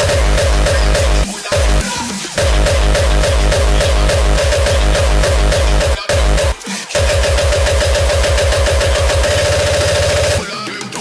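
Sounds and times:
kick drum roll: 0.0s - 1.8s, 2.4s - 9.6s
held synth tone: 0.0s - 10.4s.

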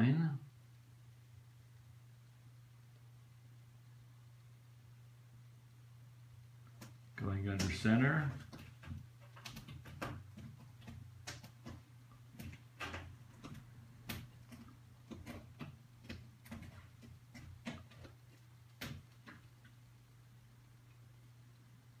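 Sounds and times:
steady low hum: 0.0s - 22.0s
small clicks and taps: 6.6s - 19.9s.

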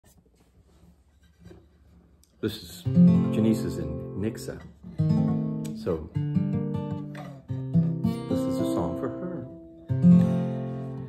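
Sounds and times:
acoustic guitar rustling: 0.0s - 11.0s.

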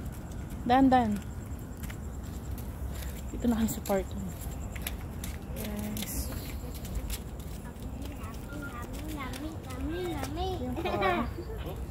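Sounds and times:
steady low rumble: 0.0s - 11.9s
people talking: 0.6s - 1.2s, 3.3s - 4.4s, 5.4s - 11.9s
child's voice: 7.5s - 11.9s.

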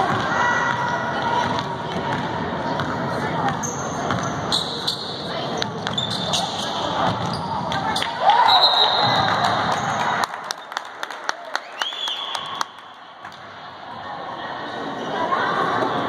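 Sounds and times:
spectators' voices: 0.0s - 16.0s
sneaker squeaks: 3.4s - 9.9s.

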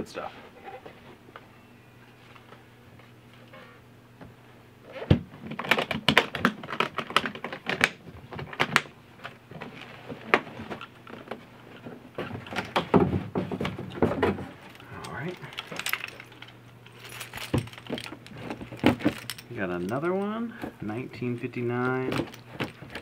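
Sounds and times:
keys jangling: 14.7s - 20.0s.

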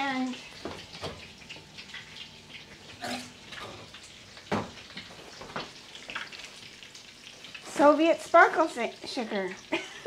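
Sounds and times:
kitchen knocks and clinks: 4.5s - 4.8s.

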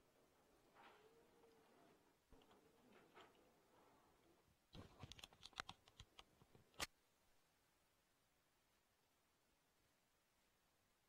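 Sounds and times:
computer keyboard typing: 4.8s - 6.3s.

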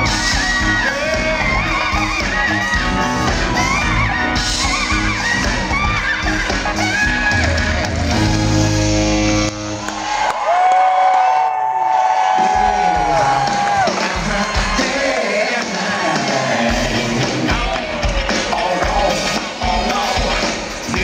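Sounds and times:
funk band playing live: 0.0s - 9.9s, 12.3s - 21.0s.

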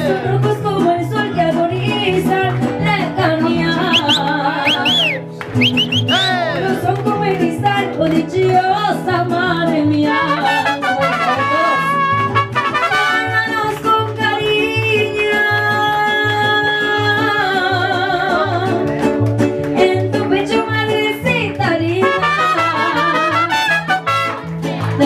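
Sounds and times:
mariachi band playing: 0.0s - 25.0s
strummed guitars: 0.0s - 25.0s
trumpets: 10.1s - 13.4s, 22.0s - 24.5s.

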